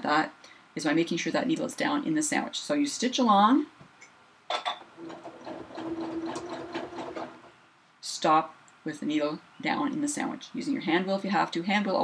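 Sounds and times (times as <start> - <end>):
sewing machine stitching: 5.0 - 7.5.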